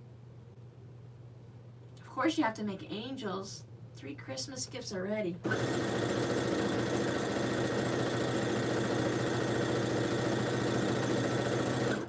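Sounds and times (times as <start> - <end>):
electric sewing machine stitching: 5.4 - 12.0.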